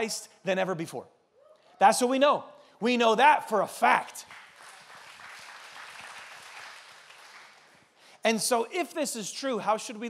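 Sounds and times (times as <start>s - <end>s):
congregation applauding: 4.1s - 8.0s.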